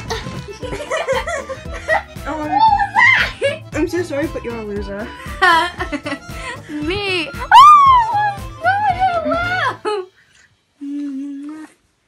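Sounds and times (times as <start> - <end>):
person humming: 10.8 - 11.8.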